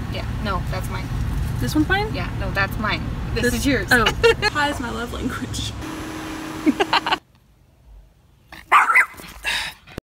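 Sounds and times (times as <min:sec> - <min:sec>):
dog barking: 0:08.6 - 0:09.2.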